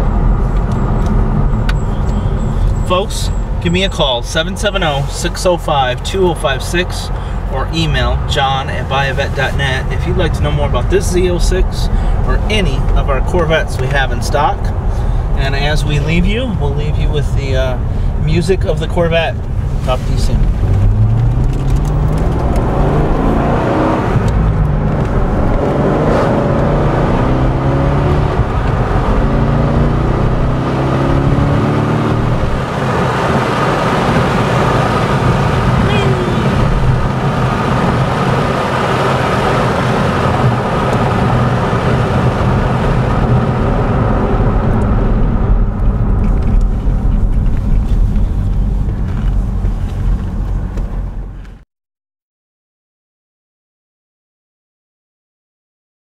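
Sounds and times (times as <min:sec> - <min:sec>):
car engine accelerating through gears: 0:19.4 - 0:51.6.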